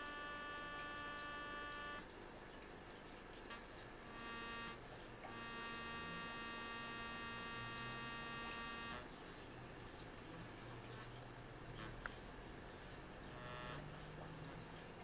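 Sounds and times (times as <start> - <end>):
faint electrical buzz: 0.0 - 15.0.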